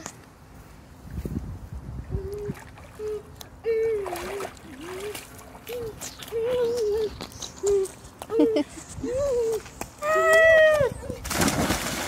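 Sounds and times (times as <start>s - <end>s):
water splashing: 2.3s - 7.0s, 11.2s - 12.0s.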